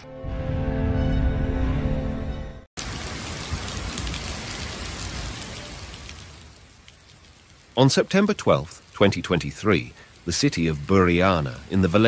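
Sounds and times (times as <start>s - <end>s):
heavy rain on street: 2.8s - 12.0s.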